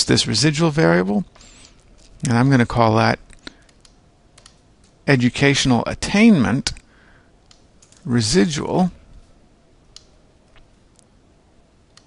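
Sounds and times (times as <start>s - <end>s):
keyboard and mouse clicks: 3.3s - 5.0s.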